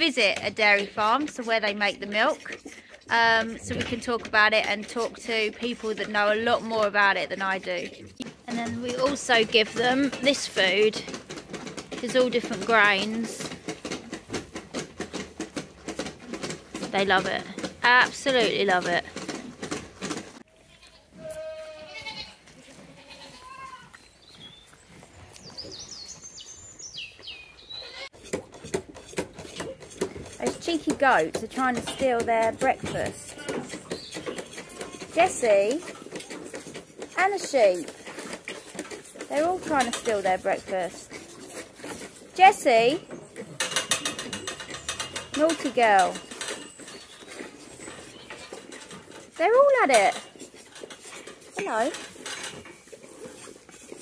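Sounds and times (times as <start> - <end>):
woman speaking: 0.0 - 7.9, 8.5 - 11.1, 12.0 - 13.5, 16.9 - 19.1, 30.4 - 33.2, 35.2 - 35.8, 37.2 - 37.9, 39.3 - 41.1, 42.4 - 43.0, 45.4 - 46.2, 49.4 - 50.2, 51.6 - 52.0
animals eating from metal trough: 0.0 - 54.0
goat bleating: 20.5 - 23.9
small birds chirping: 23.3 - 28.1, 33.3 - 35.5, 42.4 - 49.1.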